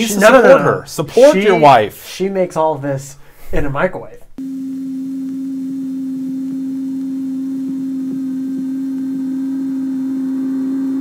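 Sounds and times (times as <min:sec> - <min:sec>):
microwave oven electric hum: 0:04.4 - 0:11.0.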